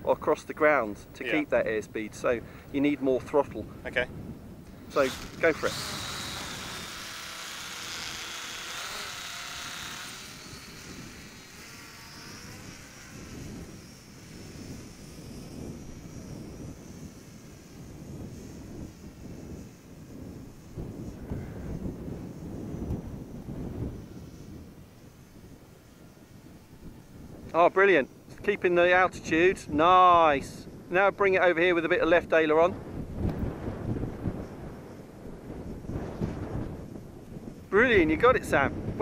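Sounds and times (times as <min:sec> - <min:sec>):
wind rumble on microphone: 0:00.0 - 0:39.0
model plane motor whining: 0:04.7 - 0:27.4.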